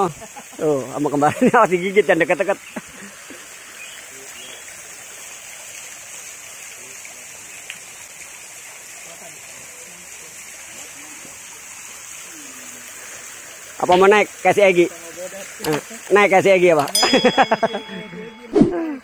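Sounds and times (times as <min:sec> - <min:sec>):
fountain water splashing into pond: 0:00.0 - 0:18.3.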